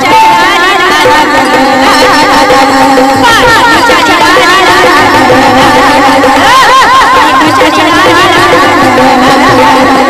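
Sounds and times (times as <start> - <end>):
instrumental accompaniment: 0.0 - 10.0
woman singing devotional song: 0.0 - 10.0.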